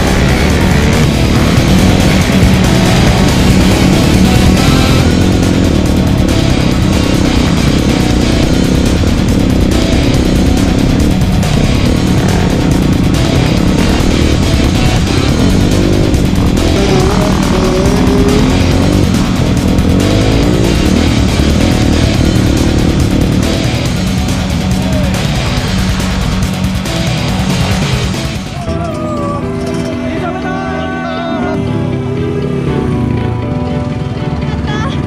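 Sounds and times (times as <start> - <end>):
dirt bike engine revving: 0.0 - 28.7
hard rock music: 0.0 - 35.0.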